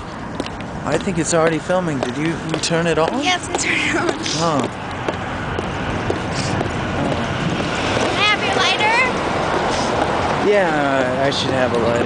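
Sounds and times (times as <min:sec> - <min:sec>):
freeway traffic rumble: 0:00.0 - 0:12.0.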